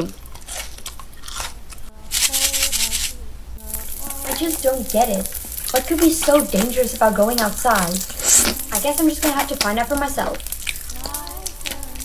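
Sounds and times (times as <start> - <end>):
crunching eating sounds: 0.0 - 12.0.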